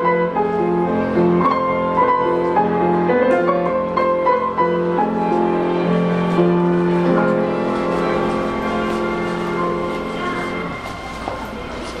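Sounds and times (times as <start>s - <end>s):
piano chord: 0.0s - 12.0s.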